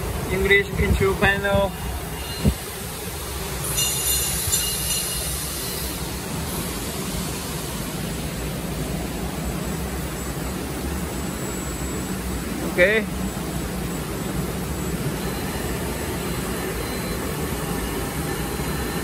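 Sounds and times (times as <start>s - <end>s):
gas burner rumbling: 0.0s - 19.0s.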